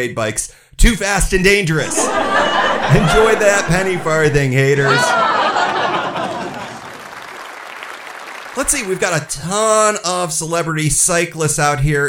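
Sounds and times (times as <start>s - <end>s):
audience applause: 1.8s - 9.2s.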